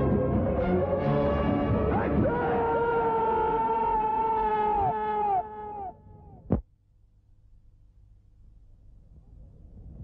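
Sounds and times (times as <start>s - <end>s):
man screaming with echoes: 1.9s - 6.0s.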